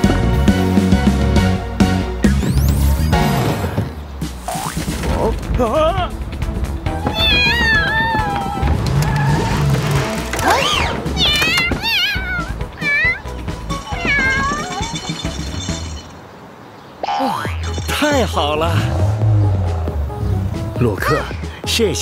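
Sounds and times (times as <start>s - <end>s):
cartoon background music: 0.0s - 16.1s, 17.4s - 22.0s
squeaky wavering voice-like sounds: 10.4s - 16.2s.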